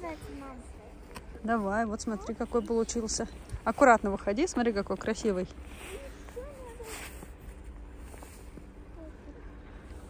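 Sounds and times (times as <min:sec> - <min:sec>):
steady low rumble: 0:00.0 - 0:10.0
footsteps in powder snow: 0:04.8 - 0:08.8.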